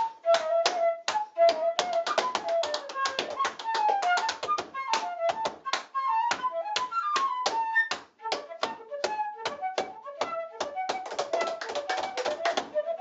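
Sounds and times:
flute playing lively melody: 0.0 - 13.0
tap shoes striking floor: 1.8 - 12.7.

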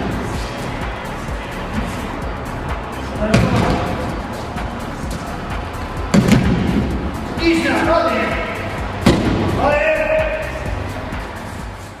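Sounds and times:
background music: 0.0 - 12.0
soft low beat: 8.3 - 9.6.

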